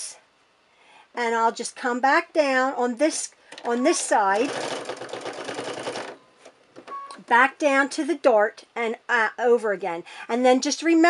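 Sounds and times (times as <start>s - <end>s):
sewing machine stitching: 3.5s - 6.2s.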